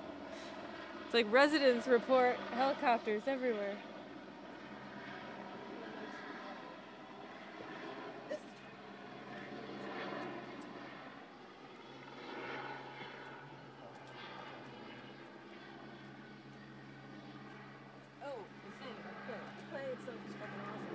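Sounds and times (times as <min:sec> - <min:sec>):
helicopter hovering: 0:00.0 - 0:20.9.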